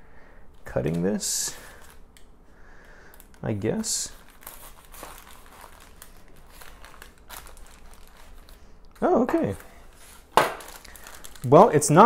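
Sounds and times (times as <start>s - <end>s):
paper crinkling: 3.1s - 12.0s.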